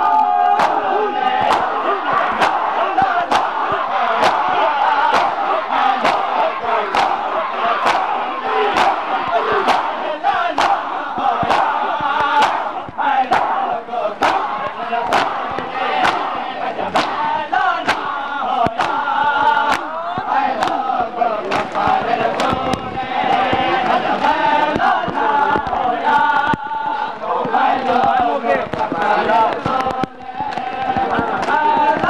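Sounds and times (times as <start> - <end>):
men chanting and shouting: 0.0 - 32.0
hands slapping bare chests: 0.1 - 16.3, 16.9 - 26.7, 27.4 - 32.0.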